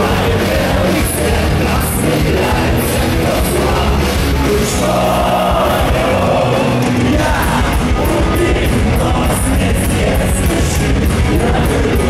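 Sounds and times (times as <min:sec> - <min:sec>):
distorted electric guitar: 0:00.0 - 0:12.0
drums: 0:00.0 - 0:12.0
man singing lead vocal: 0:00.0 - 0:12.0.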